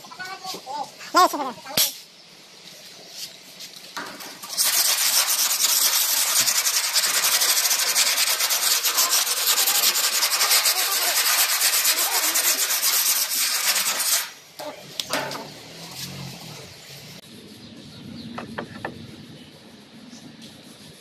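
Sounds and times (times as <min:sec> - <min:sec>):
sandpaper scratching on metal: 0:04.2 - 0:14.4.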